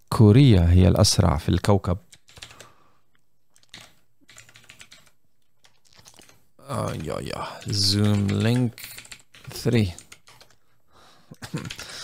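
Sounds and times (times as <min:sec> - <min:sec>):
keystrokes on computer keyboard: 0:02.1 - 0:02.7, 0:03.5 - 0:10.6, 0:11.5 - 0:12.0.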